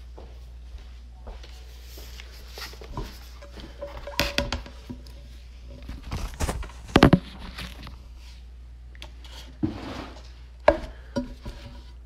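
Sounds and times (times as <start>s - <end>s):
phone handling rustle: 5.8s - 8.0s.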